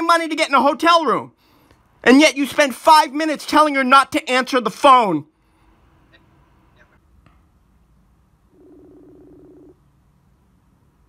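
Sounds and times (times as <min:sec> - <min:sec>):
low buzzing ringback tone: 0:08.5 - 0:09.8.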